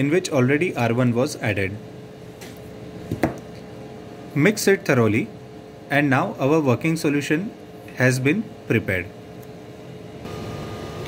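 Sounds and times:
analyzer and ventilation hum: 0.0 - 11.0
faint high whine: 5.9 - 11.0.

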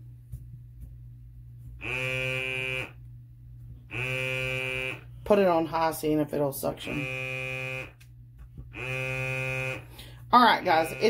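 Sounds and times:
soap dispenser pump motor buzzing: 1.8 - 3.1, 3.9 - 5.2, 6.8 - 11.0.

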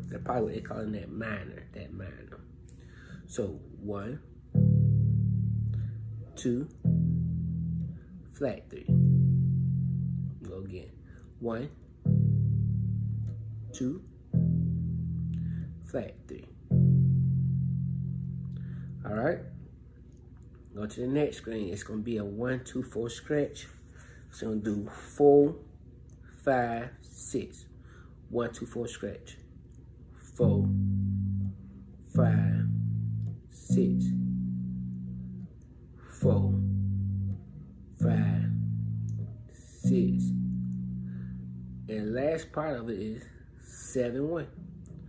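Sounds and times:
bass guitar low note: 0.0 - 10.9, 12.0 - 19.8, 30.3 - 45.0.

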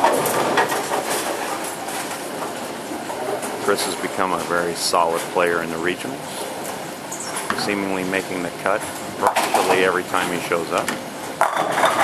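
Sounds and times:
bowling balls rumbling: 0.0 - 12.0.

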